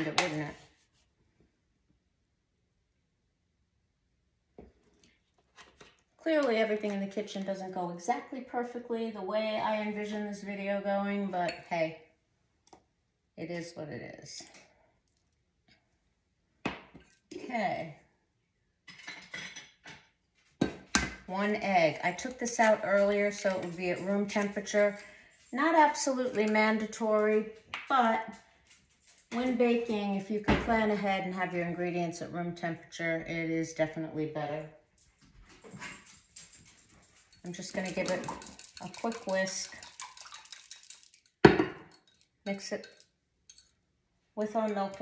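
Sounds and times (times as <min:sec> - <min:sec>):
dishes and utensils clinking: 0:18.9 - 0:20.0, 0:35.7 - 0:43.8
fork whisking egg in glass: 0:37.4 - 0:43.7.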